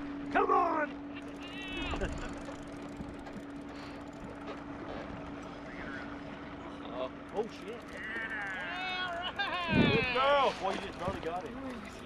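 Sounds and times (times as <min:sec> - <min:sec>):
boat motor humming: 0:00.0 - 0:12.0
wind: 0:00.0 - 0:12.0.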